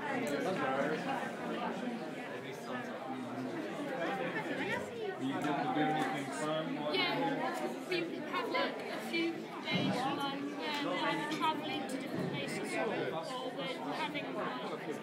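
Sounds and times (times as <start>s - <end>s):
indistinct chatter of voices: 0.0s - 15.0s.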